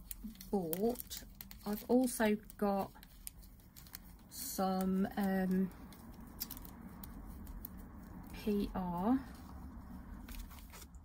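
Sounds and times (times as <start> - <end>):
gloved hands handling item: 0.0 - 11.0.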